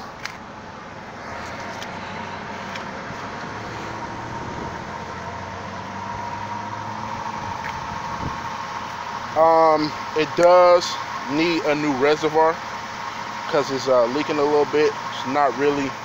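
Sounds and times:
car engine idling: 0.0 - 16.0
thin steady whine: 0.0 - 16.0.

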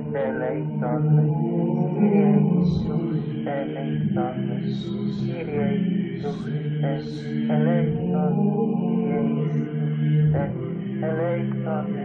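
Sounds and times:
vocal chant: 0.0 - 12.0.

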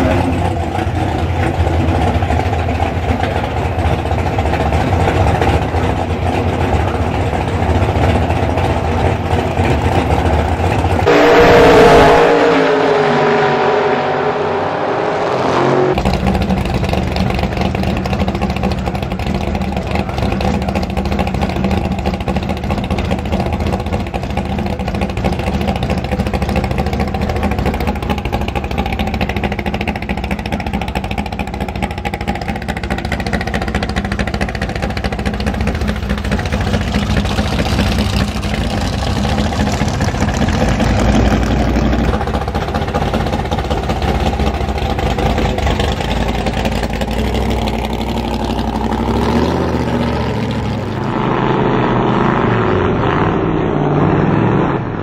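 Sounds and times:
hot rod engines idling: 0.0 - 11.8, 15.9 - 52.5
engine revving loud: 11.0 - 16.7, 37.2 - 55.0.

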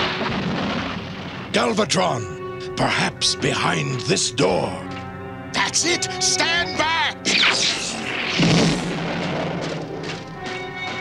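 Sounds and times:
dramatic background music: 0.0 - 11.0
sharp blast: 7.3 - 9.7.

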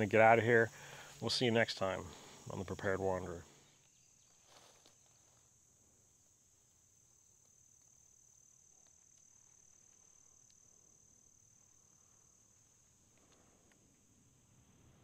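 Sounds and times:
faint ticks: 7.4 - 8.0, 8.6 - 10.8, 12.6 - 14.1.

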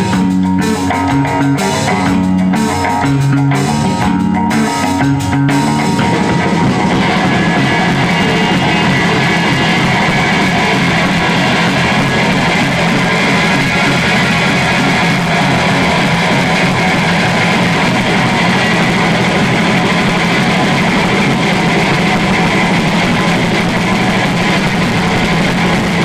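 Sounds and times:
punk band playing live: 0.0 - 26.0.

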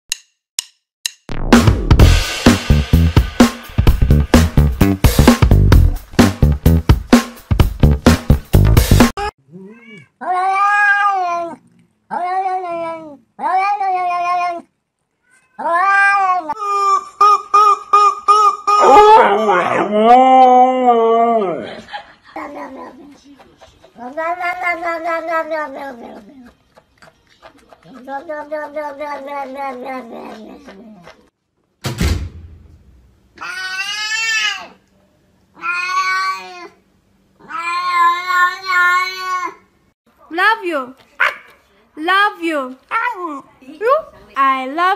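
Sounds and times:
beat-driven background music: 0.1 - 9.3
cat meowing: 9.5 - 16.6, 24.0 - 26.2, 35.6 - 36.7, 37.4 - 39.6
sharp thump: 31.8 - 33.1.

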